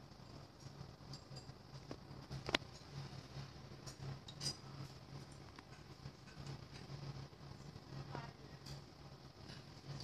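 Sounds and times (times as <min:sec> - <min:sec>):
oven humming: 0:00.0 - 0:10.0
light clinks: 0:00.6 - 0:01.9, 0:03.8 - 0:05.0.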